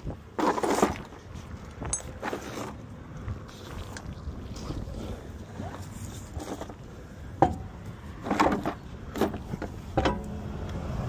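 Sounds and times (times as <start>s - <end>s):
wind buffeting microphone: 0.0s - 0.4s.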